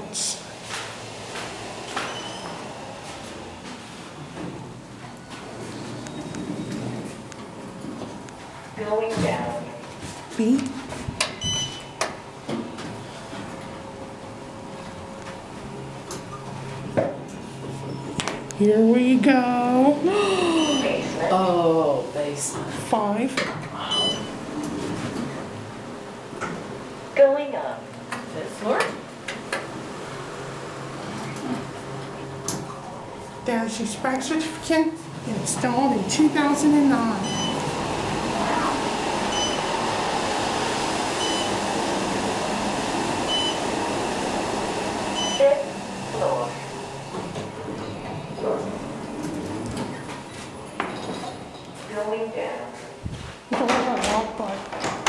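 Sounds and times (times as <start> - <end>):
elevator ride noise: 0.0 - 55.0
elevator stopping thump: 1.2 - 2.8
elevator arrival chime beep: 2.0 - 2.6, 11.4 - 12.0, 20.4 - 21.2, 23.8 - 24.4, 37.2 - 37.7, 39.3 - 39.8, 41.2 - 41.6, 43.3 - 43.7, 45.1 - 45.7
short high beeps: 23.9 - 24.3.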